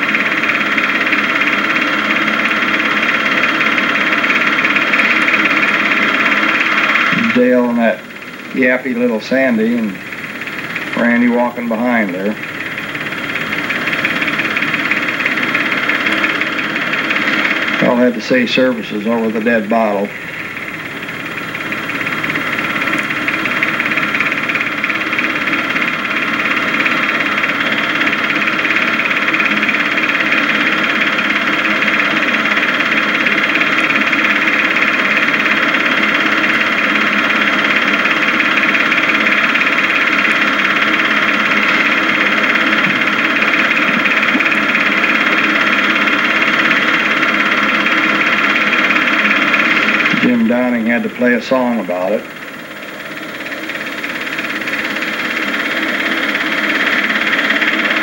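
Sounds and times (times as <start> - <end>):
machine humming and whining: 0.0 - 58.0.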